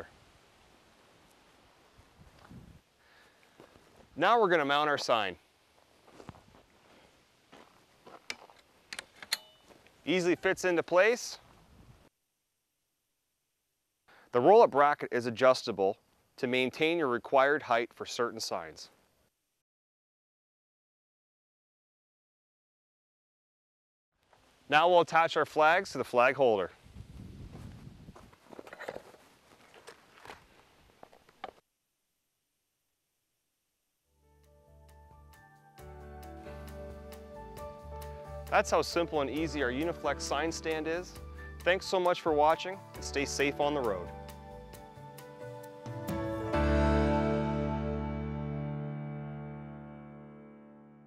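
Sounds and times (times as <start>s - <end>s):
footsteps crunching on gravel: 3.6s - 4.2s, 5.8s - 8.7s, 27.5s - 31.4s.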